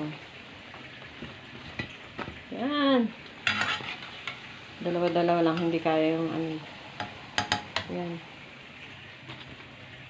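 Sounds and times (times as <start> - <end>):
hot dogs sizzling in oil: 0.0 - 10.0.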